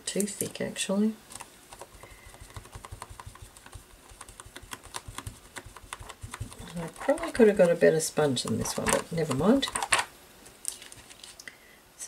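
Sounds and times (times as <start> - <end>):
sponge tapping paint on paper: 1.7 - 7.8.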